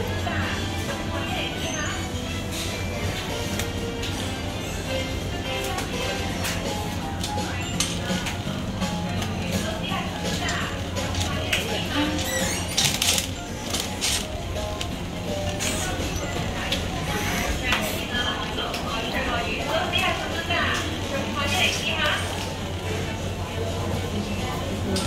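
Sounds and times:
murmur of shoppers' voices: 0.0 - 25.0
store background music: 0.0 - 25.0.

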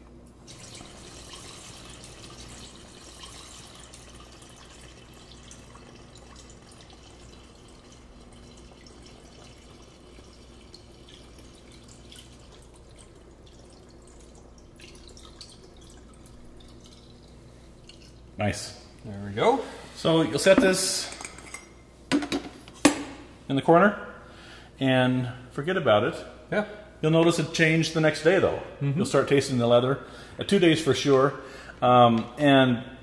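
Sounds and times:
liquid pouring through funnel: 0.4 - 18.4.

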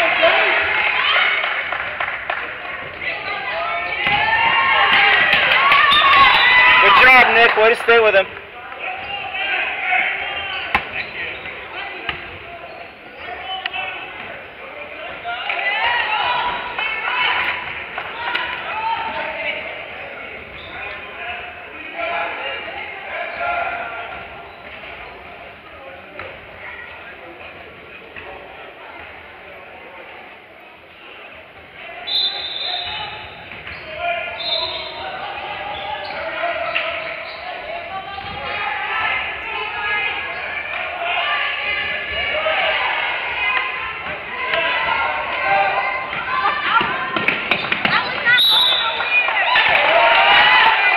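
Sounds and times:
voices echoing in a gym: 0.0 - 50.9
referee's whistle: 5.7 - 7.1, 32.0 - 37.6, 47.5 - 49.2.

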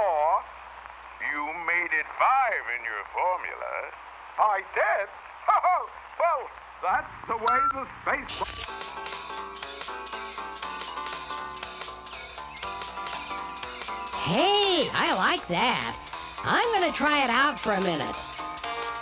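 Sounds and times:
television music: 0.0 - 19.0.

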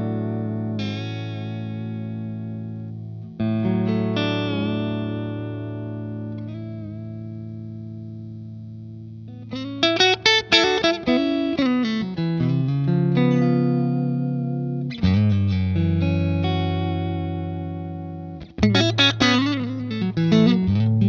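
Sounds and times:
electric guitar chord ringing: 0.0 - 21.0
picked guitar notes and chord stabs: 0.0 - 21.0.

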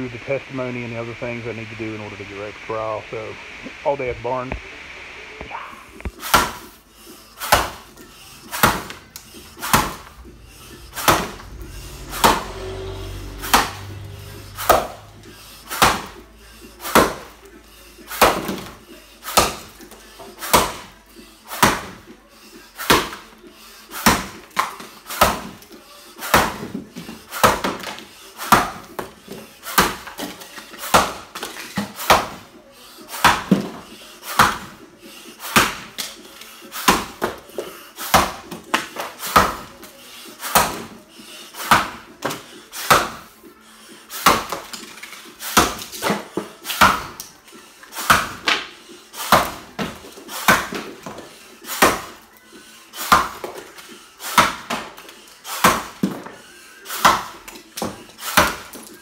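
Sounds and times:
axe chopping log: 6.1 - 6.7, 7.4 - 7.8, 8.5 - 9.0, 9.6 - 10.1, 11.0 - 12.7, 13.4 - 13.9, 14.5 - 15.0, 15.7 - 16.2, 16.8 - 17.3, 18.2 - 19.7, 20.5 - 20.9, 21.5 - 22.0, 24.0 - 25.6, 26.2 - 26.8, 27.4 - 29.1, 30.9 - 32.4, 33.2 - 33.8, 34.4 - 34.7, 35.5 - 36.1, 38.1 - 39.7, 40.5 - 40.9, 41.7 - 43.2, 45.5 - 47.2, 48.0 - 48.7, 49.3 - 51.2, 53.1 - 53.6, 54.3 - 55.0, 55.6 - 56.2, 57.0 - 58.8.

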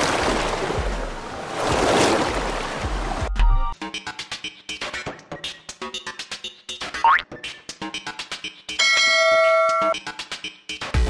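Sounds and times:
electronic music with clicking beat: 3.3 - 11.0
bell-like ding: 8.8 - 9.9.

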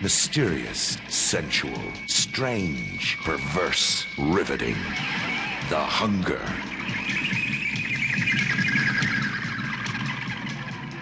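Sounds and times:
trailer music: 0.0 - 11.0.

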